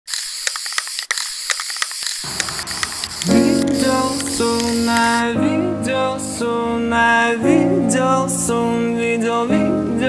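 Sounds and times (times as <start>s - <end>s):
static hiss with crackling: 1.3s - 5.3s.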